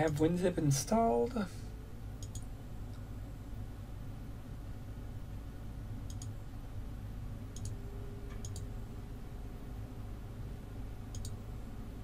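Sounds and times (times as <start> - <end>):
low steady hum: 0.0 - 12.0
computer mouse button clicking: 6.1 - 6.3, 7.6 - 8.7, 11.1 - 11.4.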